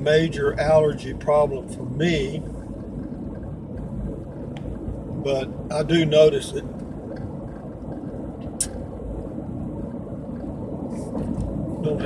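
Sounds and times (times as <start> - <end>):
car engine low hum: 0.0 - 12.0
tyres on asphalt: 0.0 - 12.0.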